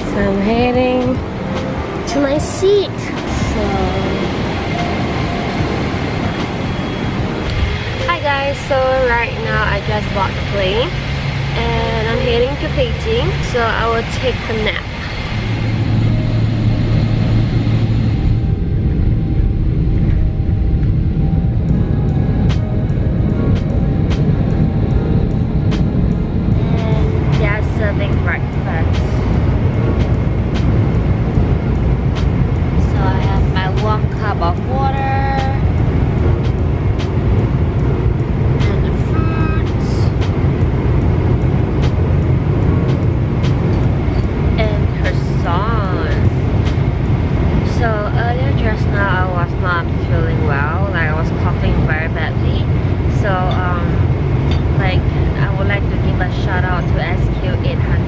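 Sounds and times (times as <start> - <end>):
airliner cabin rumble: 0.0 - 58.0.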